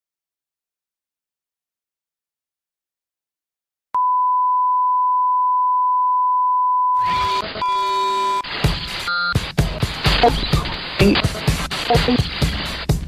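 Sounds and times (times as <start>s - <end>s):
sine test tone: 4.0s - 8.4s
noisy sound with held tones: 7.0s - 9.3s.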